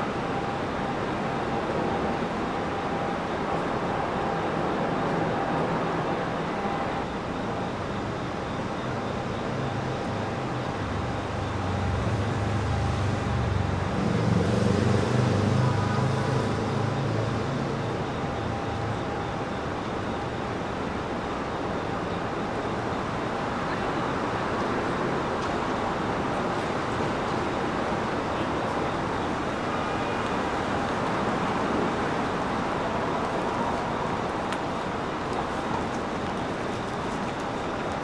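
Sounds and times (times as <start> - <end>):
traffic hum: 0.0 - 38.0
heavy vehicle rumbling past: 11.6 - 18.8.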